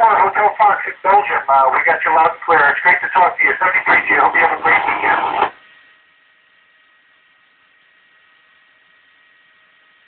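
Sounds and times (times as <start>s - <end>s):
radio scanner hiss and whine: 0.0s - 6.0s.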